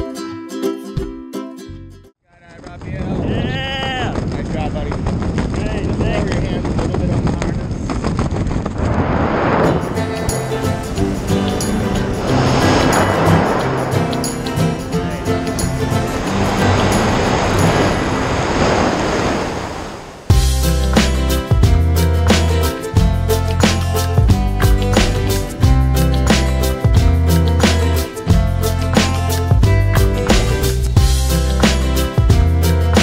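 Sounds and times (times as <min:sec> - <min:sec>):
wind rushing over microphone: 0:02.4 - 0:20.4
background music: 0:09.6 - 0:18.2, 0:20.3 - 0:33.0.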